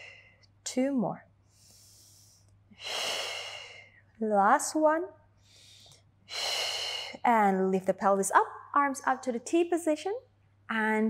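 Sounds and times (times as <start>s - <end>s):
woman breathing: 0.0s - 0.5s, 1.4s - 4.1s, 5.4s - 7.3s.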